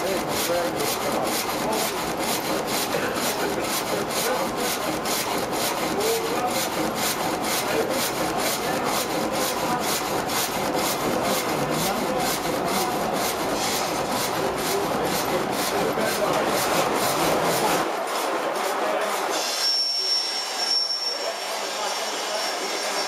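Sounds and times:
frame saw rasping through log: 0.0s - 23.0s.

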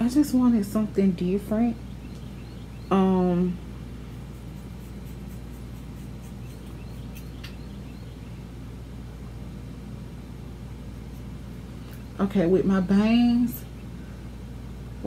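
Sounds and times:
steady low hum: 0.0s - 15.0s
scissors snipping hair: 4.5s - 7.6s.

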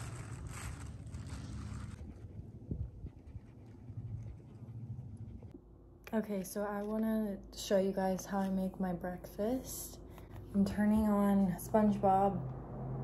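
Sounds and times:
wind rumbling on microphone: 1.4s - 5.5s.

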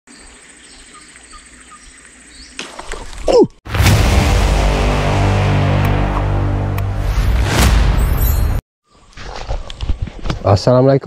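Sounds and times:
birds chirping: 0.1s - 3.4s.

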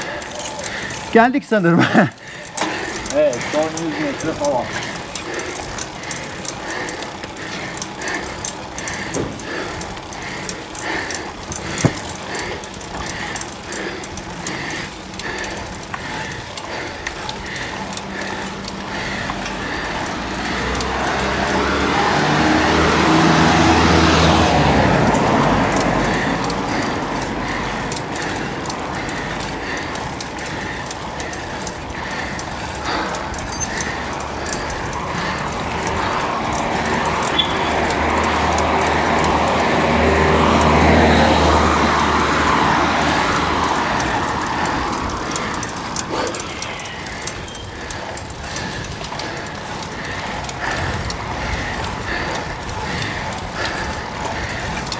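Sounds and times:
bicycle road noise: 0.0s - 54.9s
car passing: 0.0s - 54.9s
faint regular ticking: 0.0s - 54.9s.

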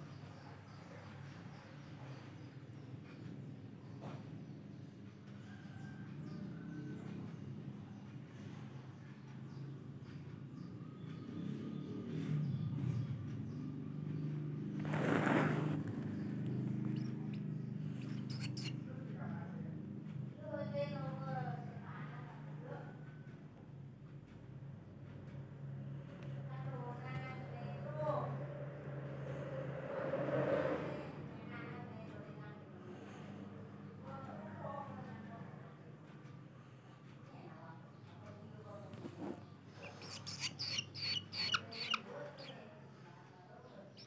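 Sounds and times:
bird chicks chirping: 10.6s - 19.5s, 39.1s - 43.0s, 43.7s - 44.0s
bird nestling begging chirps: 15.8s - 18.8s, 39.7s - 42.6s.

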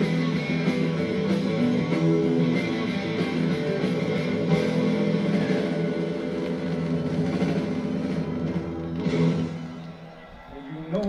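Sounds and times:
rock band playing through tv speaker: 0.0s - 11.0s.

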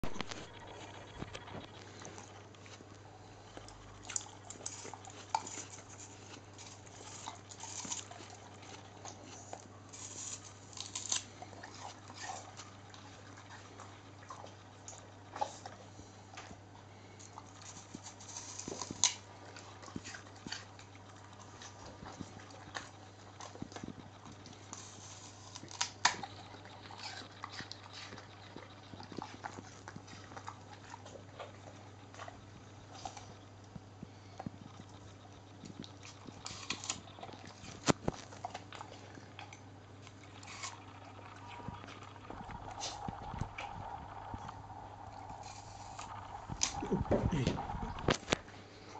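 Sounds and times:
dog crunching apple: 0.0s - 48.9s
steady low hum: 0.0s - 48.9s.

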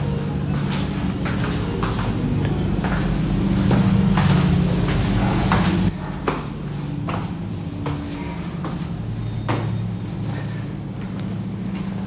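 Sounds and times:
footsteps on tiled floor: 0.0s - 12.0s
steady low hum: 0.0s - 12.0s.

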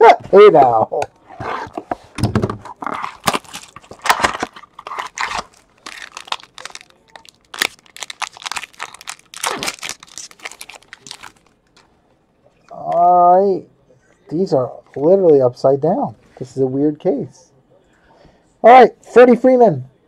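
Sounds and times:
plastic wrap crackling and tearing: 2.7s - 11.6s
box cutter slitting plastic wrap: 9.4s - 10.0s.

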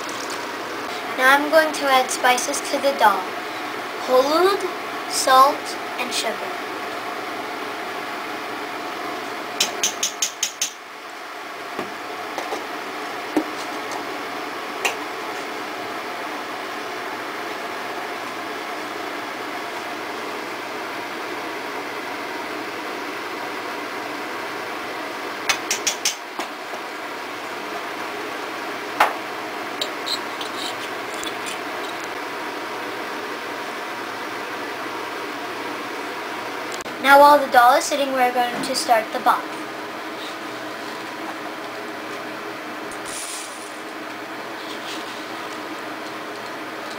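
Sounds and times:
fan-like background noise: 0.0s - 46.9s.

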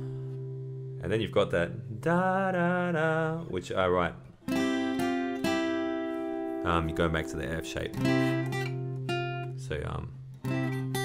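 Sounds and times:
acoustic guitar picking notes: 0.0s - 11.0s.

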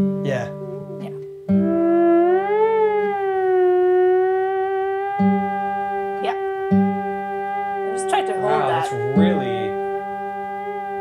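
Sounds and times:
theremin holding a note: 0.0s - 11.0s
acoustic guitar chord strummed: 8.0s - 10.5s.

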